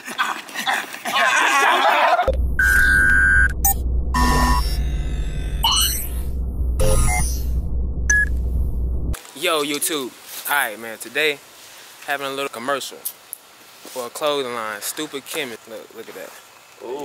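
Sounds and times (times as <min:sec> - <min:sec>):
men yelling and whooping: 0:00.7 - 0:02.3
short electronic beeps: 0:02.3 - 0:08.4
deep bass drone: 0:02.3 - 0:09.2
held synth tones: 0:02.3 - 0:09.2
rising synth sweep: 0:02.3 - 0:09.2.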